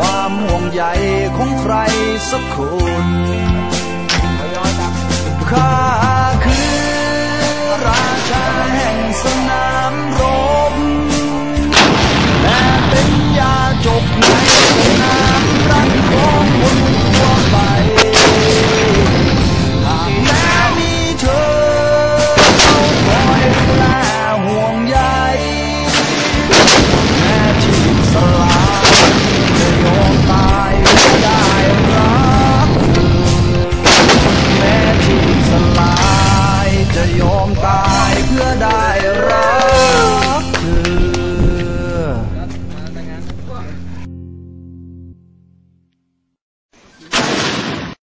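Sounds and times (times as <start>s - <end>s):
artillery gun bang: 11.7s - 21.3s, 22.3s - 24.0s, 25.9s - 37.1s, 47.0s - 48.0s
howitzer firing: 11.7s - 24.0s, 25.9s - 38.7s, 47.1s - 48.0s
lingering rumble: 11.7s - 24.0s, 26.5s - 43.8s.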